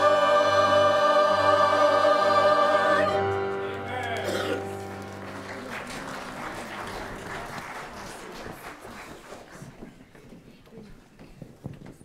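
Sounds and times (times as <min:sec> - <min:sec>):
held musical chord: 0:00.0 - 0:06.8
congregation applauding: 0:02.8 - 0:10.0.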